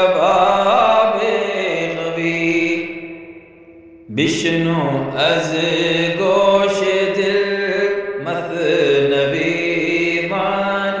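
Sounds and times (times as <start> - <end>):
man chanting devotional melody: 0.0 - 3.4, 4.1 - 11.0.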